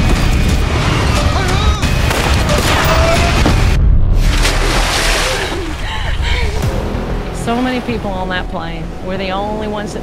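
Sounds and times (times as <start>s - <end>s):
dramatic trailer music: 0.0s - 10.0s.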